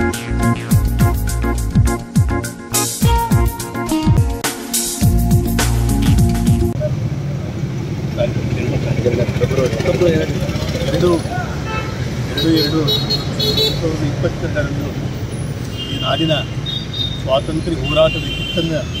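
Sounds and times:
background music: 0.0s - 6.8s
traffic rumble: 6.7s - 19.0s
people talking: 6.8s - 11.6s, 12.4s - 13.1s, 13.8s - 15.0s, 17.3s - 18.9s.

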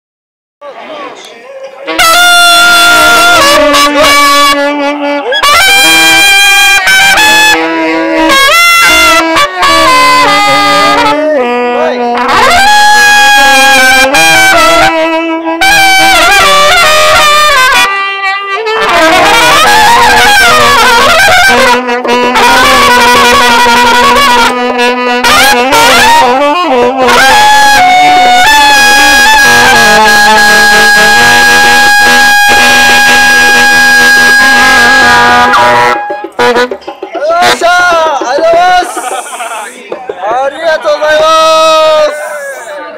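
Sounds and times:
brass horn playing held notes: 1.8s - 39.8s
saxophone playing held notes: 1.9s - 37.9s
loud whooping shouts: 19.2s - 20.6s.

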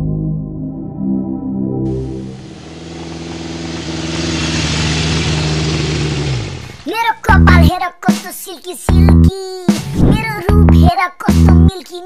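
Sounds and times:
road and wind noise: 1.9s - 6.8s
vehicle engine running: 1.9s - 7.7s.

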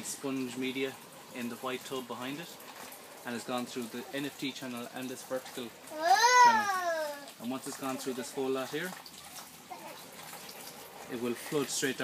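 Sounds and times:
running water: 0.0s - 12.0s.

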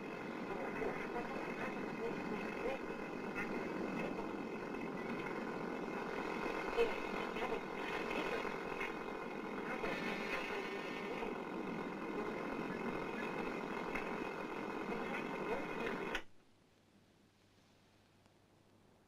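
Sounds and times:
indistinct voices: 0.0s - 16.2s
television broadcast noisy rush: 0.0s - 16.3s
hum: 0.0s - 19.0s.

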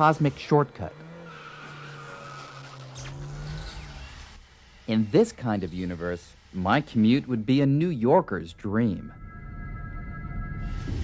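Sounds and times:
car engine drone: 0.0s - 11.0s
high squealing whine: 1.3s - 11.0s.

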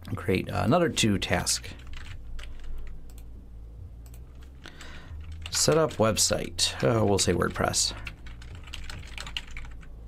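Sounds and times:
computer keyboard keys clicking: 1.8s - 3.2s, 4.0s - 6.0s, 7.0s - 9.9s.

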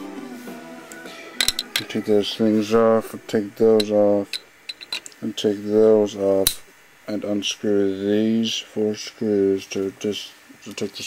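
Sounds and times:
metallic clicks and clinks: 1.4s - 1.9s.

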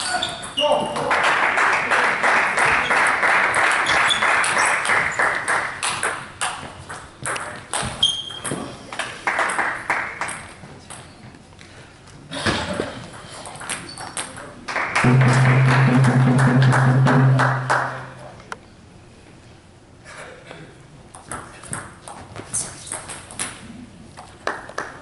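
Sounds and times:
crowd noise: 15.0s - 18.4s.

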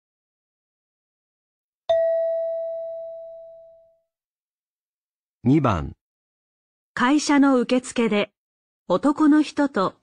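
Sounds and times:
bell-like chime ding: 1.9s - 4.0s.

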